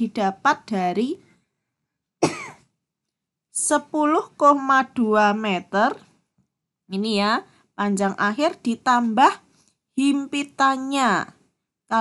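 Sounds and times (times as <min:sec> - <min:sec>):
person coughing: 0:02.2 - 0:02.7.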